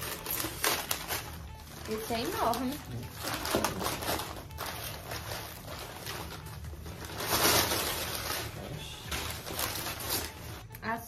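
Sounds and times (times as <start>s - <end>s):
plastic and paper crinkling: 0.0s - 11.0s.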